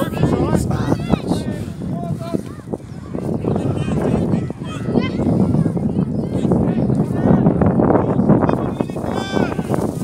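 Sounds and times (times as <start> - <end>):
children shouting: 2.4 - 6.9.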